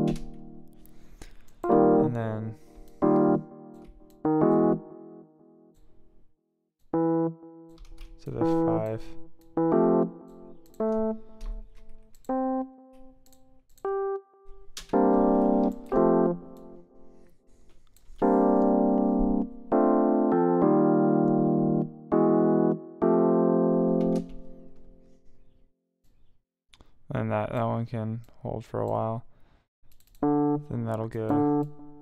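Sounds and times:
electric piano jazzy chords: 0:00.0 - 0:05.9, 0:06.9 - 0:17.4, 0:18.1 - 0:25.2, 0:30.2 - 0:32.0.

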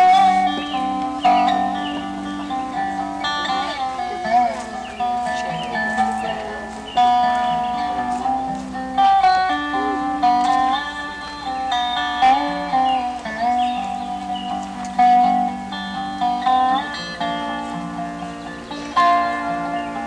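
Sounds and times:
ringing bass notes: 0:00.0 - 0:20.0
slide guitar melody: 0:00.0 - 0:20.0.

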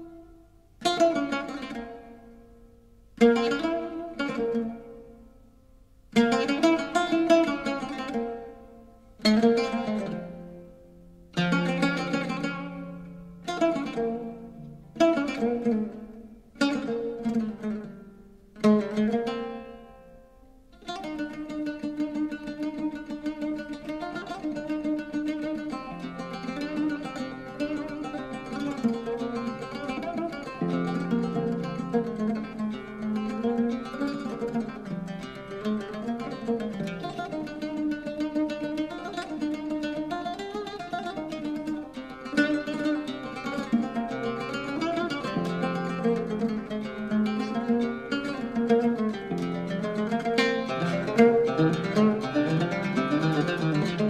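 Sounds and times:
solo oud playing: 0:00.0 - 0:54.0.

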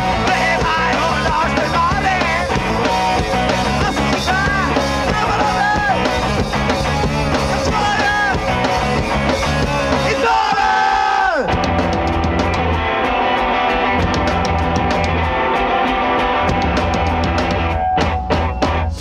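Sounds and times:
singer yelling and singing: 0:00.0 - 0:11.6
punk rock band playing: 0:00.0 - 0:19.0.

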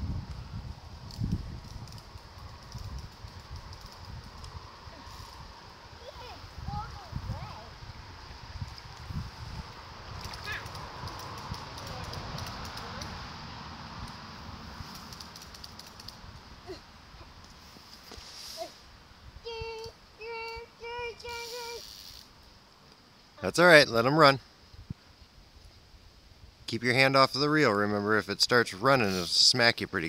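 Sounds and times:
wind rumbling on microphone: 0:00.0 - 0:16.7
child's voice: 0:06.0 - 0:07.8, 0:10.3 - 0:10.8, 0:19.4 - 0:21.9.

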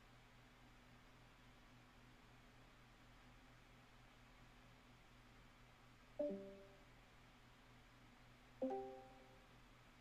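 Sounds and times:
short musical chord notes: 0:06.2 - 0:06.6.

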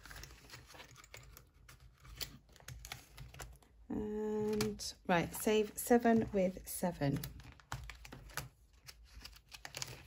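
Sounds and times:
paper and plastic rustling: 0:00.0 - 0:03.7, 0:04.4 - 0:10.0.

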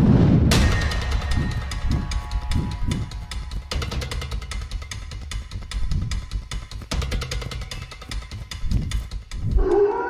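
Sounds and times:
percussive music with drum hits: 0:00.5 - 0:09.8
wolf howl: 0:09.6 - 0:10.0.

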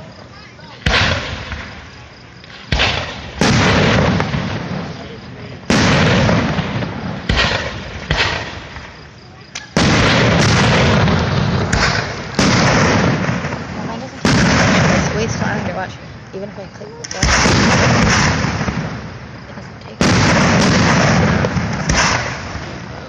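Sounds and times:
firework shells booming: 0:00.0 - 0:23.0
rolling echo: 0:00.0 - 0:23.0.

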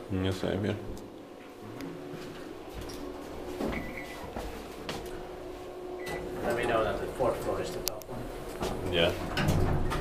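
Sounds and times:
elevator hum: 0:01.3 - 0:10.0.

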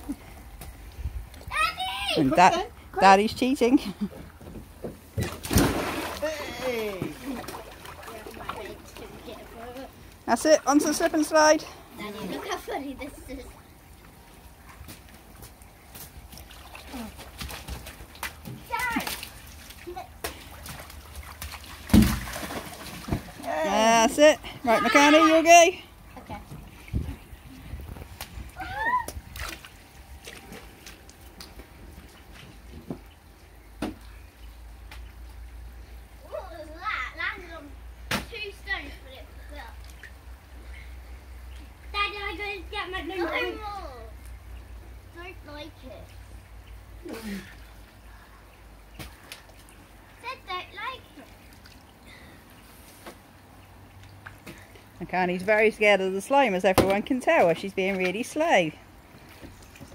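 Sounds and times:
child speaking loudly: 0:01.5 - 0:02.3, 0:42.0 - 0:44.1
water balloons bursting and splashing: 0:05.1 - 0:09.6, 0:15.6 - 0:23.8.

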